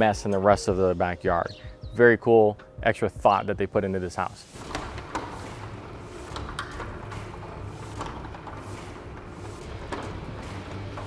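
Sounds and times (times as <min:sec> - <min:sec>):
garage door rolling up: 0:04.1 - 0:11.0.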